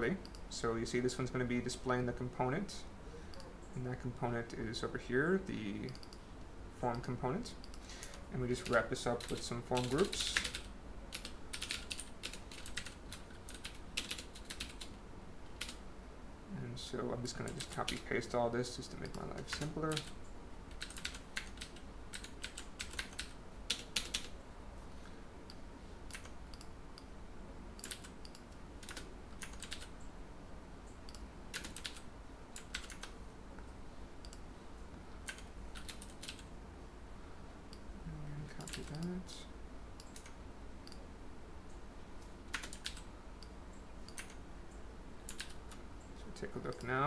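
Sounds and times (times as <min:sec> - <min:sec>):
keyboard typing clicks: 0:19.0 - 0:24.3, 0:25.5 - 0:27.1, 0:27.8 - 0:30.0, 0:30.9 - 0:32.0, 0:32.6 - 0:33.2, 0:40.0 - 0:41.0, 0:42.5 - 0:44.4, 0:45.3 - 0:45.8
keyboard keys clicking: 0:27.8 - 0:29.9, 0:42.5 - 0:43.0, 0:44.1 - 0:44.4.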